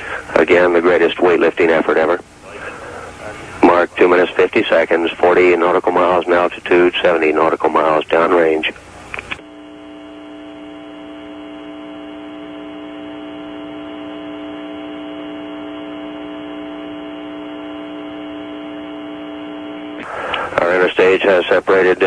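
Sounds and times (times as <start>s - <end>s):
steady electrical hum: 0.0s - 22.0s.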